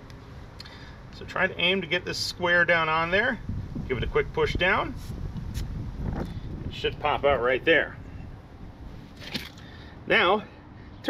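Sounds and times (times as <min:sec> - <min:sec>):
low steady outdoor rumble: 0:00.0 - 0:11.0.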